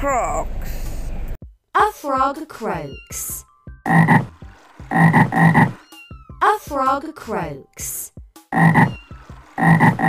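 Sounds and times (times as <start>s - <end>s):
frog croaks: 3.9s - 4.3s, 4.9s - 5.8s, 8.5s - 9.0s, 9.6s - 10.0s.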